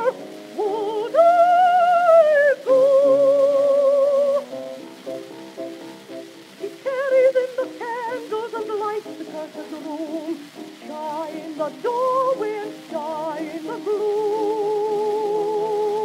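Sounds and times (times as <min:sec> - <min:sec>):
contralto singing with vibrato: 0:00.0 - 0:04.6, 0:06.4 - 0:16.0
piano: 0:00.0 - 0:16.0
record surface hiss: 0:00.0 - 0:16.0.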